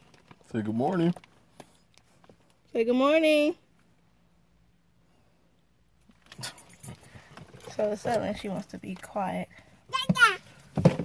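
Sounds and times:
phone rustling and knocking: 10.7s - 11.0s.

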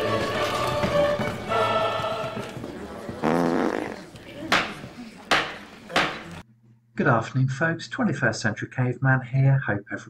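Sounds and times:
sharp knock: 4.5s - 6.3s.

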